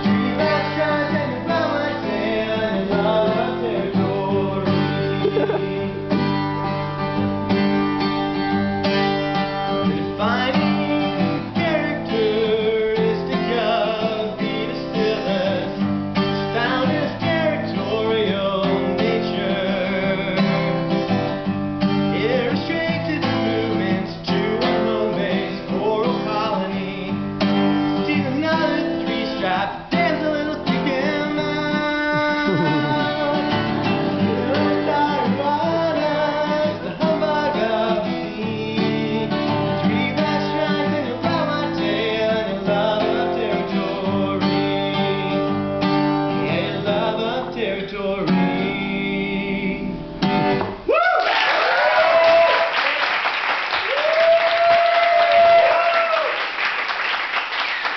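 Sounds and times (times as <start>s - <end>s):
man singing: 0.0s - 6.4s, 8.6s - 50.1s
acoustic guitar playing: 0.0s - 50.9s.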